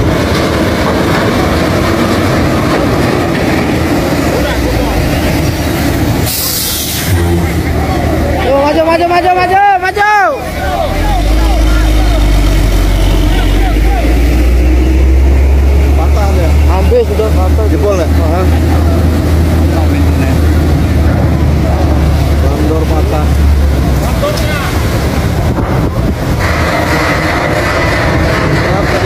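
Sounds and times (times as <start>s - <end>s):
low engine rumble: 0.0s - 29.0s
people shouting: 9.3s - 15.2s.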